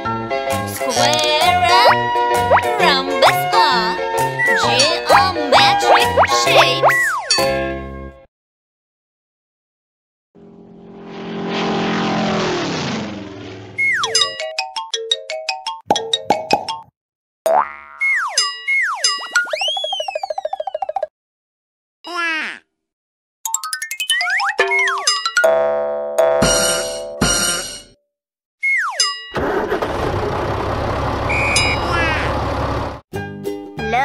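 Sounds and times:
cartoon tractor engine: 0:00.8 - 0:07.4, 0:18.1 - 0:21.1, 0:28.7 - 0:33.0
falling whistle: 0:13.8 - 0:14.2, 0:18.7 - 0:20.4, 0:31.3 - 0:31.9
falling whistle slides: 0:13.8 - 0:14.2, 0:31.3 - 0:31.9
twangy cartoon boing: 0:17.5 - 0:18.4
short high beep: 0:31.3 - 0:32.0.

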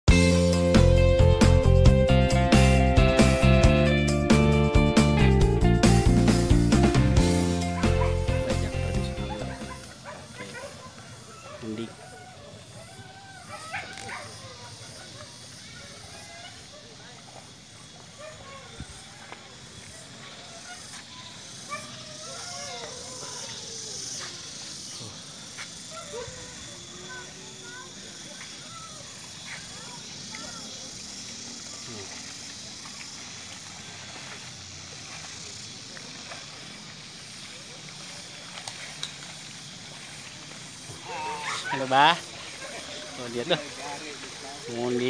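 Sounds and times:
faint outdoor background: 0:00.0 - 0:45.0
distant voices calling out: 0:06.5 - 0:45.0
steady hiss: 0:14.3 - 0:45.0.

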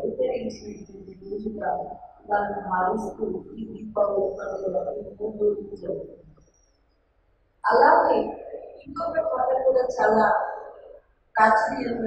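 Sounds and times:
woman speaking: 0:00.0 - 0:06.1, 0:07.6 - 0:10.7, 0:11.4 - 0:12.0.

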